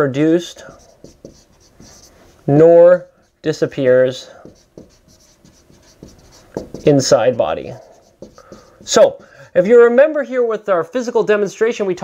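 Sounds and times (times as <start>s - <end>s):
man talking: 0.0s - 0.8s, 2.5s - 4.5s, 6.8s - 8.0s, 8.8s - 12.0s
marker squeaking on whiteboard: 0.6s - 2.3s, 4.3s - 9.7s.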